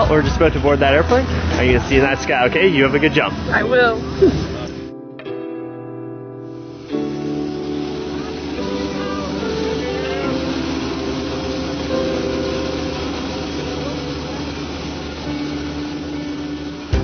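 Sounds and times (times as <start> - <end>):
aircraft engine running: 0.0 - 4.9, 6.4 - 17.0
held music chords: 0.0 - 17.0.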